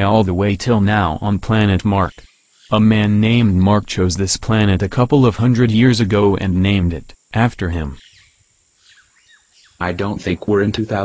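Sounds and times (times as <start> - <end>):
synthesized voice speaking: 0.0 - 8.0, 9.8 - 11.0.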